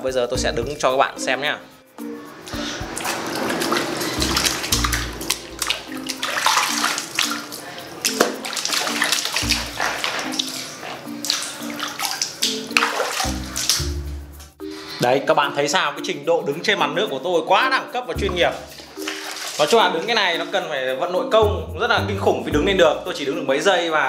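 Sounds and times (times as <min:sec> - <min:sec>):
background music: 0:00.0 - 0:24.0
bare feet splashing in water: 0:02.3 - 0:14.1, 0:18.2 - 0:20.4.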